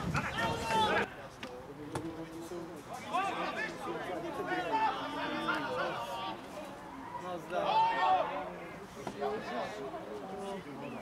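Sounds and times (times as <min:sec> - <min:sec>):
voices calling out: 0:00.0 - 0:01.5.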